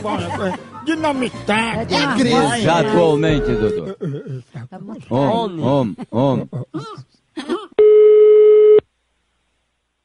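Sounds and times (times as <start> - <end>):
telephone line tone: 7.8 - 8.8.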